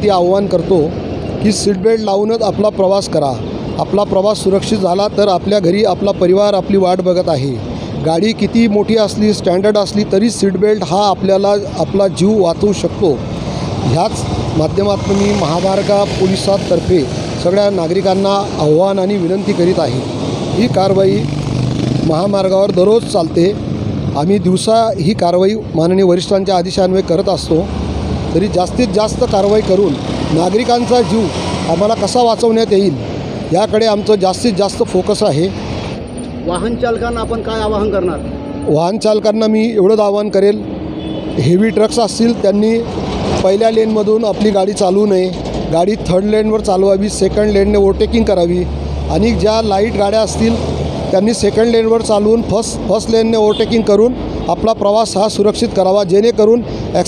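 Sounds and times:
man speaking: 0.0s - 13.2s, 13.8s - 21.4s, 22.0s - 27.7s, 28.3s - 35.6s, 36.4s - 40.7s, 41.4s - 57.0s
man talking: 0.0s - 21.4s, 22.0s - 27.7s, 28.3s - 35.6s, 36.4s - 40.7s, 41.4s - 57.0s
highway traffic noise: 0.0s - 57.0s
trucks passing: 0.0s - 57.0s.

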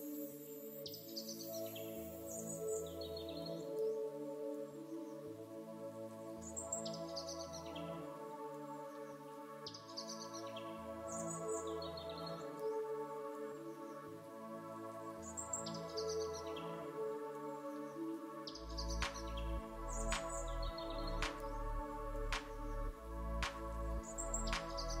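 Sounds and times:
soft ambient music: 0.0s - 25.0s.

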